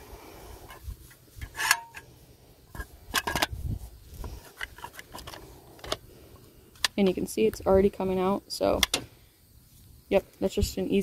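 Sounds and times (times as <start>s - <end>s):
caulking gun metal clicks and rattles: 2.7s - 3.6s, 4.3s - 6.0s.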